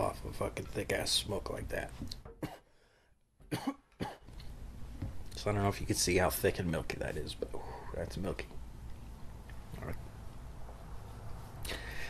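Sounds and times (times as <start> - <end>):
man coughing: 2.3 - 2.7, 3.5 - 4.2.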